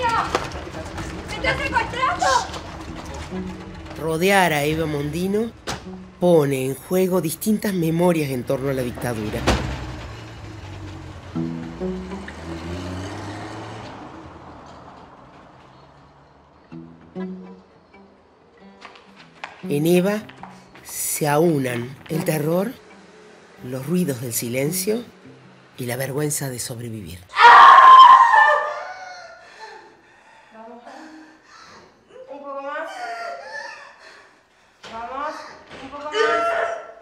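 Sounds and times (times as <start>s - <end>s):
held low notes: 0.0s - 12.9s
woman screaming: 1.6s - 2.5s, 27.3s - 29.4s, 32.1s - 34.0s, 35.2s - 37.0s.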